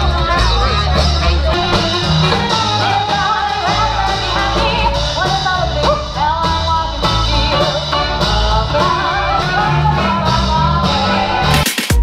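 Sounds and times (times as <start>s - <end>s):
woman singing: 0.0s - 11.6s
drums: 0.0s - 12.0s
guitar: 0.0s - 12.0s
upright bass: 0.0s - 12.0s.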